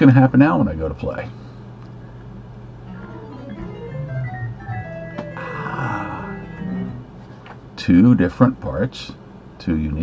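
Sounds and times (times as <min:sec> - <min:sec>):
piano and organ playing: 0:02.8 - 0:07.3.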